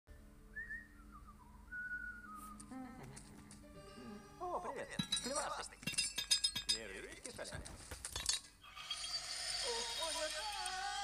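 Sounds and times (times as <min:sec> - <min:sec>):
person whistling a tune: 0:00.5 - 0:02.7.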